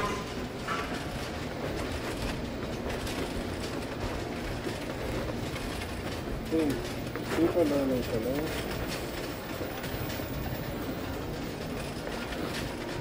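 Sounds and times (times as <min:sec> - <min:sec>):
shopping cart wheels rattling: 0:00.0 - 0:13.0.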